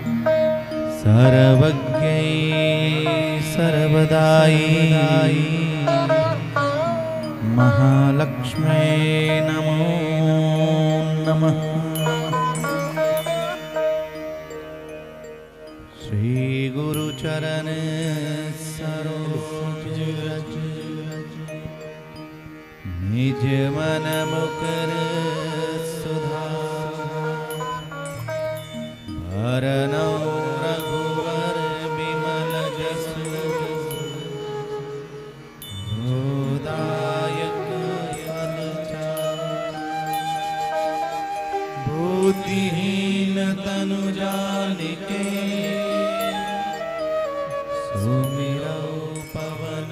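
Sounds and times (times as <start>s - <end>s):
musical accompaniment: 0.0s - 49.9s
man chanting: 0.9s - 12.9s, 23.1s - 27.6s.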